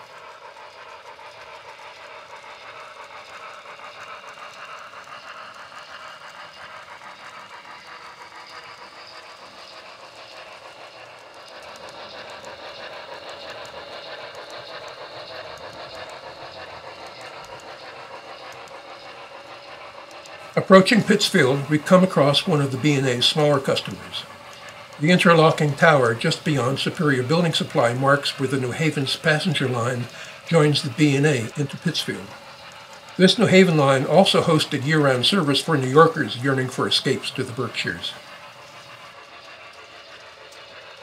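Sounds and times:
model train running on track: 0.0s - 41.0s.

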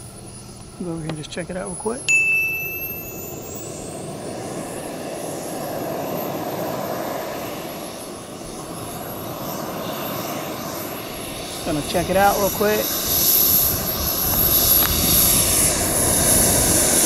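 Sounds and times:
model jet turbine engine running: 0.0s - 17.0s.

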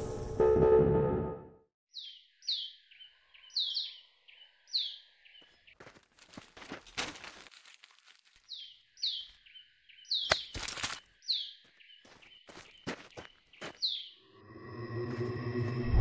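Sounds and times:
small birds chirping: 1.9s - 6.8s, 7.8s - 14.3s
footsteps: 5.8s - 8.5s, 11.6s - 13.8s, 14.9s - 16.0s.

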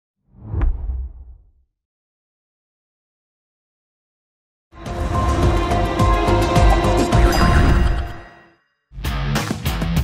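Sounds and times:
whoosh: 0.3s - 1.6s.

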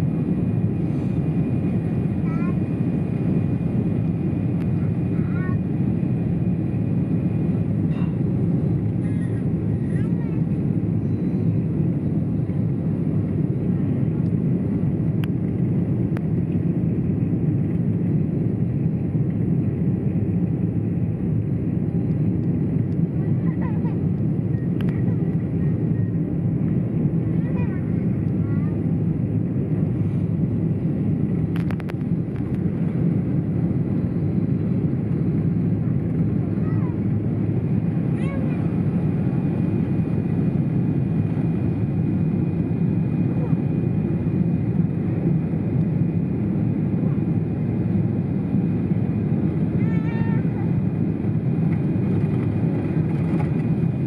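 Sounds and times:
airliner cabin engine rumble: 0.0s - 54.0s.

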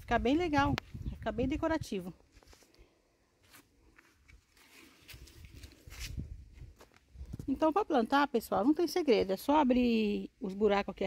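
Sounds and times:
footsteps on leafy soil: 2.2s - 2.8s, 3.4s - 7.4s.

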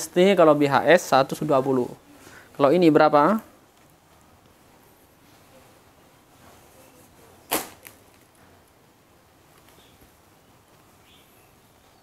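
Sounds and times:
cloth snapping taut: 7.5s - 8.2s.

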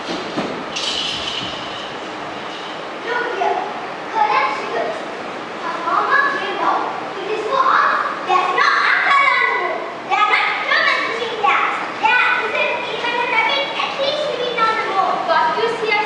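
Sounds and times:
children chattering: 3.0s - 16.0s.

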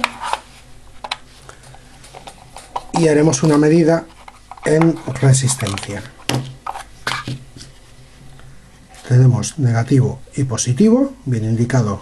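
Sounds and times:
quiet handling of plastic cover: 0.0s - 9.3s.

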